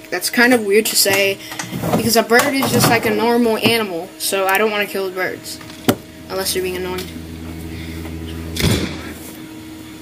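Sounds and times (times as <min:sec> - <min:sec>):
mechanical hum: 0:00.0 - 0:10.0.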